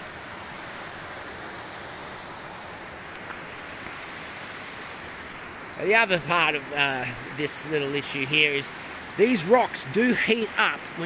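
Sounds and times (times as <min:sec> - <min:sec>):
creek water rushing over rocks: 0:00.0 - 0:11.0.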